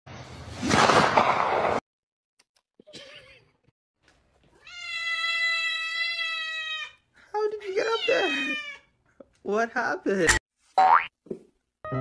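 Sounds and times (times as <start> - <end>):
cat meowing: 4.6 - 7.0.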